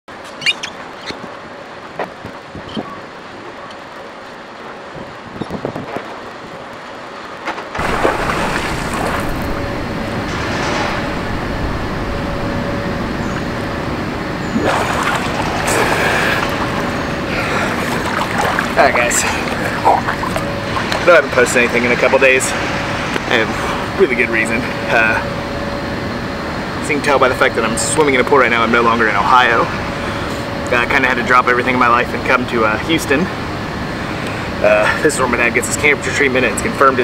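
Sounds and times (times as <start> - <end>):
wind rumble on microphone: 2.0 - 3.6, 4.8 - 6.8, 7.8 - 23.3
faint steady hum: 6.2 - 37.0
water sloshing from swimming: 7.8 - 21.8.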